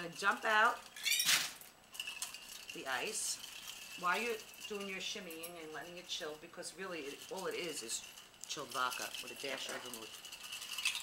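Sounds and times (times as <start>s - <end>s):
ice rattling in cocktail shaker: 0.0s - 11.0s
glass clinks: 1.0s - 1.4s.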